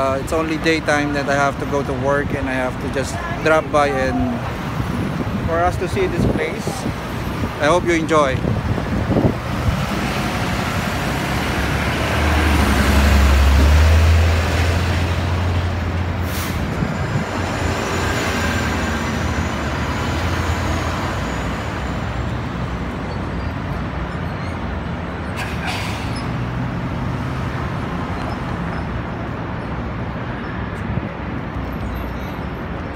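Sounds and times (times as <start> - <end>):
street traffic noise: 0.0 - 32.9
truck engine rumble: 0.0 - 32.9.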